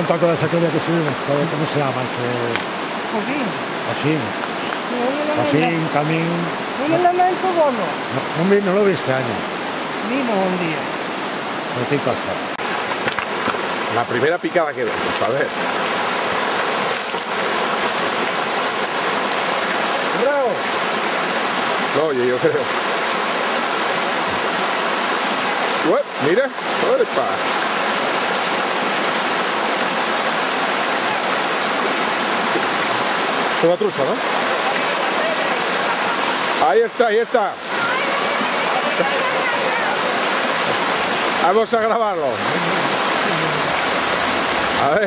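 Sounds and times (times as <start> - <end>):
river water rushing over stones: 0.0 - 45.0.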